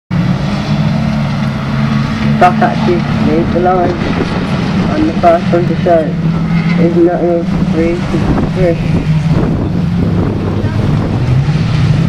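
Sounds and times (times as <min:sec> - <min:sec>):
multiple car engines racing: 0:00.1 - 0:12.0.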